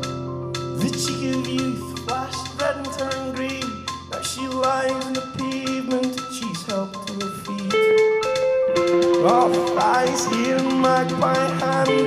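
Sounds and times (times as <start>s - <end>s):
rock band playing live: 0.0s - 12.0s
electric guitar held notes: 7.7s - 12.0s.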